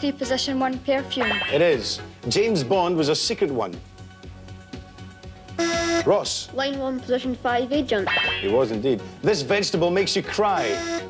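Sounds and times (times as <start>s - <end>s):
game-show background music: 0.0s - 11.0s
electronic buzzer tone: 5.6s - 6.1s, 10.6s - 11.0s.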